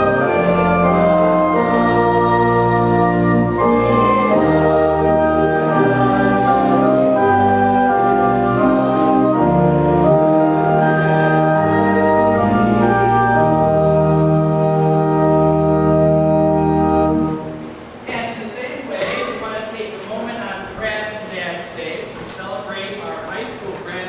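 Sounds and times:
church organ playing chords: 0:00.0 - 0:18.0.

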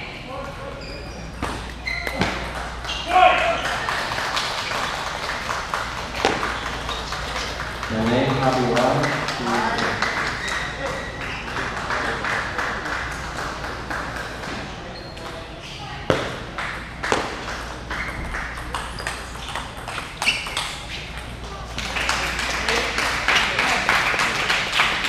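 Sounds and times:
crowd chatter in large hall: 0:00.0 - 0:25.0
table tennis ball hits: 0:06.1 - 0:06.8, 0:16.1 - 0:21.3.

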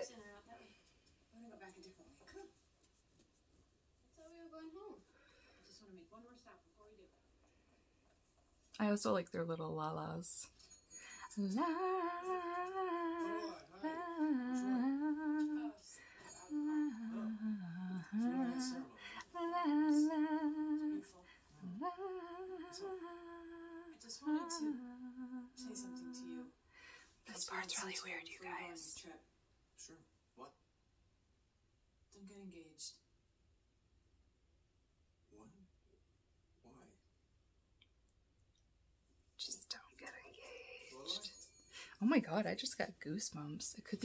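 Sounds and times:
woman singing wordless melody: 0:11.1 - 0:26.6
person whispering: 0:27.3 - 0:29.0, 0:39.4 - 0:41.4.

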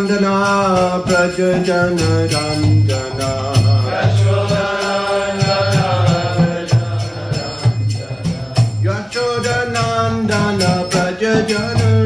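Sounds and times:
hand cymbals striking: 0:00.0 - 0:12.0
voices chanting a mantra: 0:02.9 - 0:08.9.

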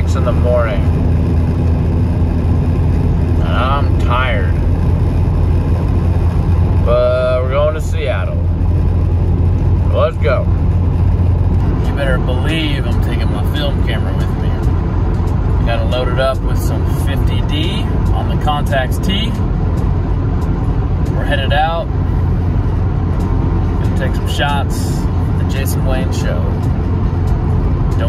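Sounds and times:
van road and engine rumble: 0:00.0 - 0:28.0.

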